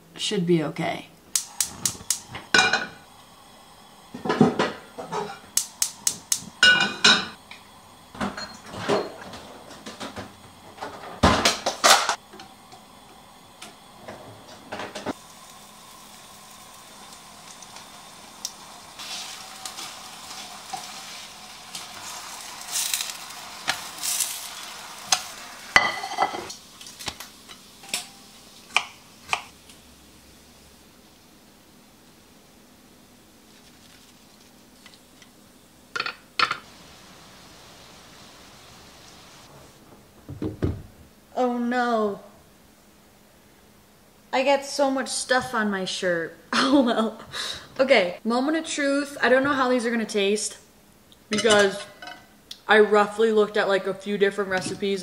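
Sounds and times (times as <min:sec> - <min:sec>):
batter sizzling in a pan: 0:01.4 - 0:39.5
frying pan and utensils clattering: 0:01.8 - 0:03.0, 0:04.2 - 0:07.4, 0:08.2 - 0:12.2, 0:21.7 - 0:29.5, 0:51.3 - 0:52.3.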